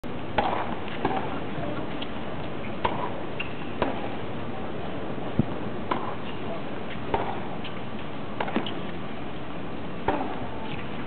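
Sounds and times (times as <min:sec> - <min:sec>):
tennis ball struck by rackets: 0:00.3 - 0:01.4, 0:02.8 - 0:04.2, 0:05.8 - 0:06.4, 0:07.1 - 0:07.8, 0:08.4 - 0:08.8, 0:10.0 - 0:10.8.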